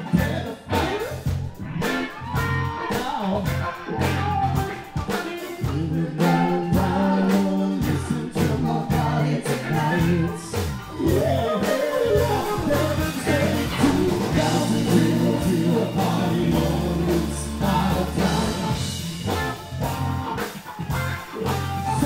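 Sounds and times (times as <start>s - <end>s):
live band playing: 0.0s - 22.0s
group singing: 1.7s - 19.8s.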